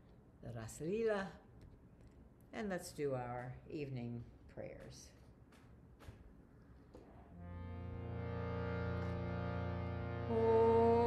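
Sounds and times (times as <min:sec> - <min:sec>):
instrumental drone: 0:07.3 - 0:11.0.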